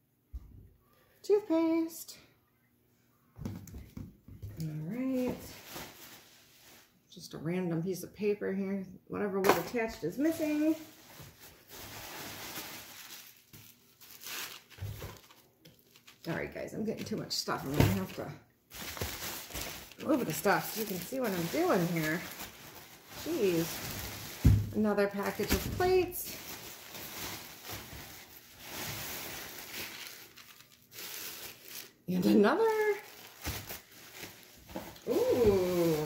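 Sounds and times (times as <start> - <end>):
packaging rustling and crinkling: 5.2 - 6.9, 10.1 - 16.4, 17.0 - 36.0.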